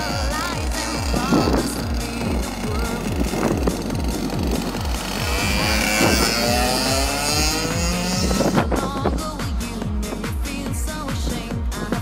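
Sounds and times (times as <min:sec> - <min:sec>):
background music with steady beat: 0:00.0 - 0:12.0
two-stroke kart engine accelerating: 0:00.0 - 0:12.0.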